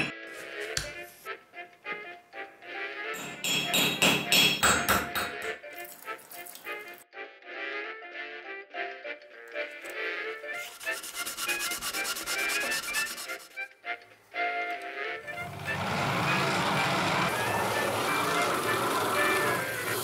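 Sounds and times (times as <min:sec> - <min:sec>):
grinding wheel rasping: 0:10.6 - 0:13.6, 0:15.2 - 0:20.0.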